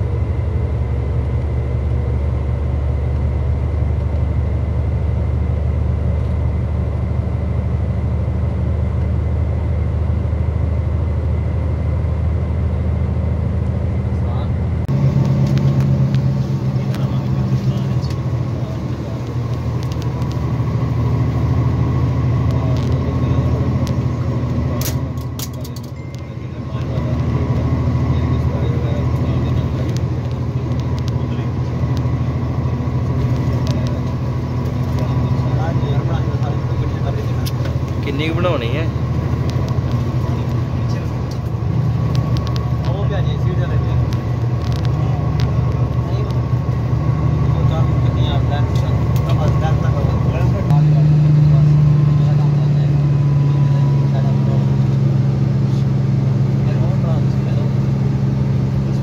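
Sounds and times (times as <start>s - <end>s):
vehicle engine and road drone: 0.0s - 59.0s.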